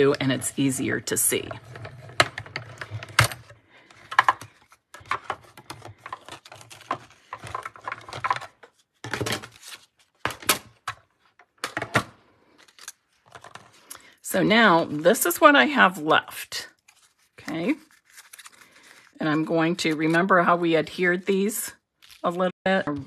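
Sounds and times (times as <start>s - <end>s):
paper rustling: 1.6s - 11.3s, 16.8s - 19.2s.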